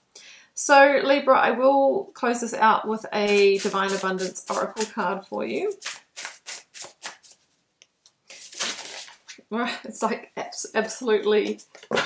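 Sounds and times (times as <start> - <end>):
cards being shuffled: 3.3 - 5.0, 5.6 - 7.4, 8.0 - 9.4.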